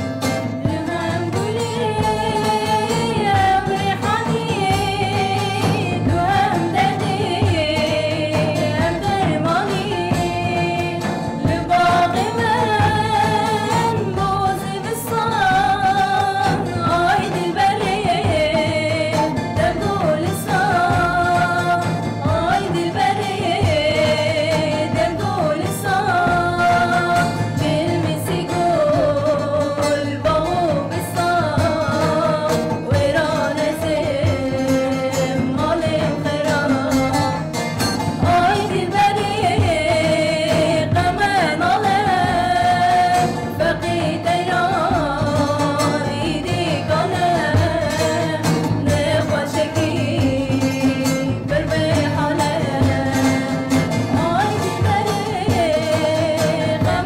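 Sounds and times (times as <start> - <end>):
frame drum beat: 0.0 - 57.0
plucked lute: 0.0 - 57.0
women singing: 0.0 - 57.0.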